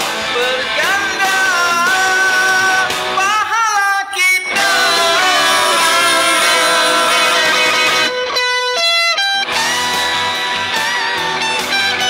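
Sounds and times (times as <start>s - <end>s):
rock instrumental backing: 0.0s - 3.4s, 4.5s - 12.0s
person singing long note: 4.6s - 8.1s.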